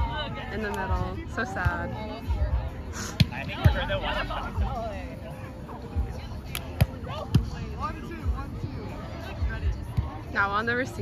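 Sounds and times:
faint players' voices: 0.0 - 11.0.

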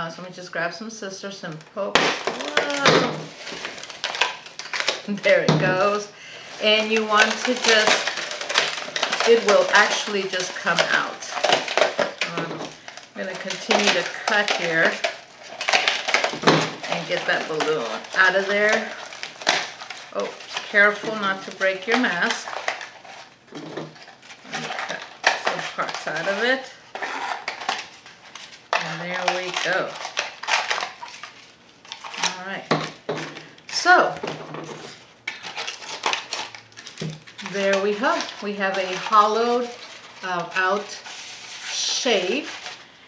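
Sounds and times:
scissors cutting papier-mache: 2.2 - 6.0, 6.6 - 12.5, 35.3 - 42.7
scissors cutting dried papier-mache: 2.3 - 3.1.

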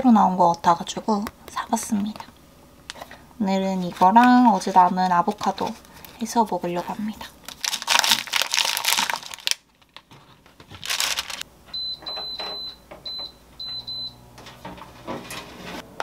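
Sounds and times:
plastic packaging crinkling: 3.7 - 11.4
control panel beeps: 11.7 - 14.2.

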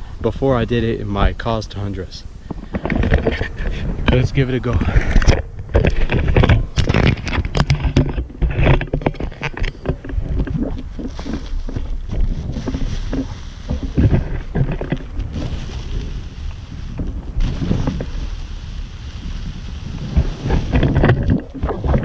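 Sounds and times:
wind buffeting microphone: 0.0 - 22.0
inline skates rolling through grass: 0.6 - 22.0.

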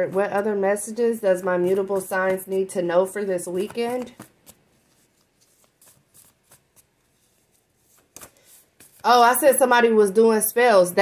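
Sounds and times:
cards shuffling: 3.2 - 9.2.

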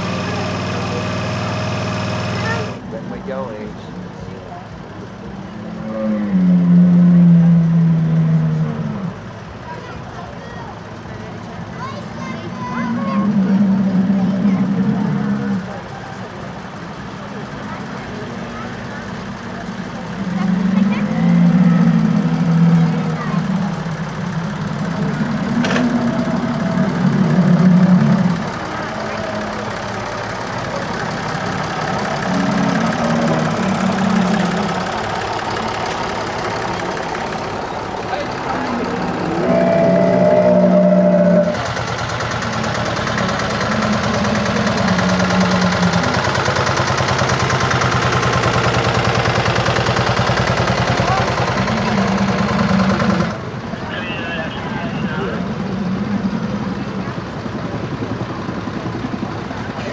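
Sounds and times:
people talking: 0.0 - 8.1, 8.7 - 48.0, 50.4 - 59.9
tractor engine running: 0.0 - 59.9.

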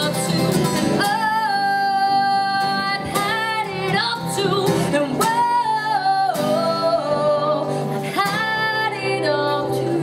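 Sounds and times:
acoustic guitar: 0.0 - 10.0
woman singing into microphone: 0.0 - 10.0.

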